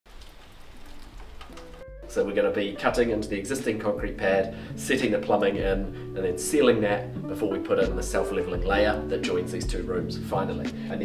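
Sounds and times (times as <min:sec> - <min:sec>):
steady rain: 0:00.1 - 0:02.9
faint musical tones: 0:01.5 - 0:11.0.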